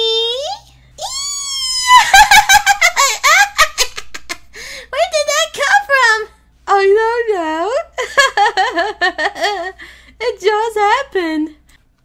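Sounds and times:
high-pitched cartoon laugh: 1.4 - 4.4.

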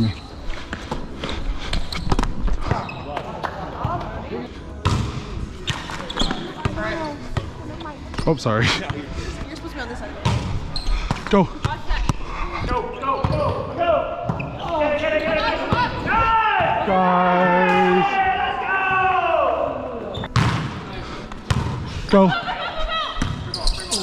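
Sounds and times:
players' voices: 2.6 - 24.0.

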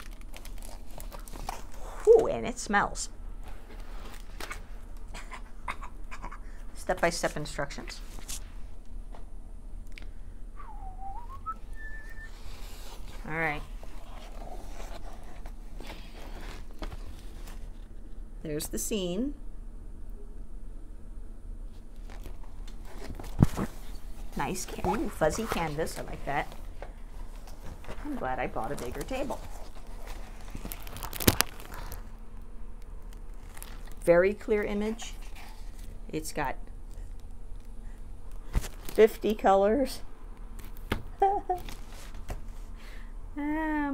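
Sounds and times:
person whistling: 10.6 - 12.4.

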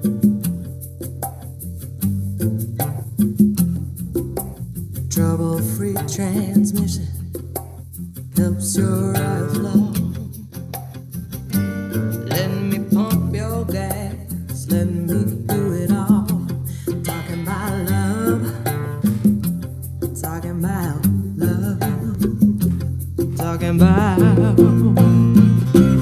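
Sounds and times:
steady bass notes: 0.0 - 26.0
song with sung vocal: 5.1 - 7.3, 8.4 - 10.7, 12.2 - 19.4, 20.1 - 26.0.

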